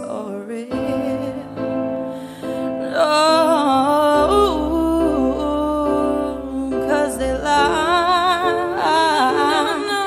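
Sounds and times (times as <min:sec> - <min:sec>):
pop backing track: 0:00.0 - 0:10.0
woman singing: 0:00.0 - 0:10.0.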